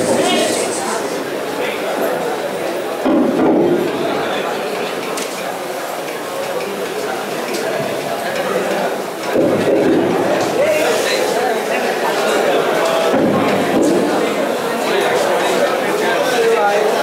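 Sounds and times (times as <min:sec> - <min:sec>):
people talking through microphone: 0:00.0 - 0:17.0.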